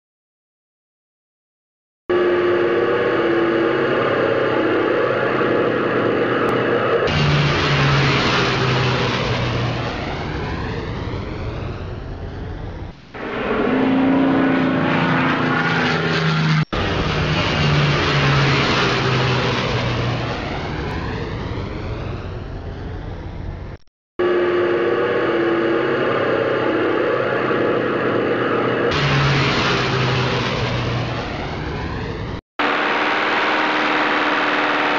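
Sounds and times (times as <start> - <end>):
piston aircraft engines droning: 2.1 - 34.9.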